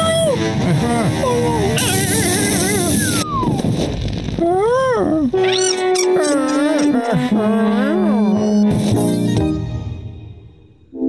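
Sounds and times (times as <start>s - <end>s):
sing-song cartoon voice sounds: 0.0s - 3.6s, 4.4s - 9.0s
electric sparks crackling: 1.8s - 4.8s.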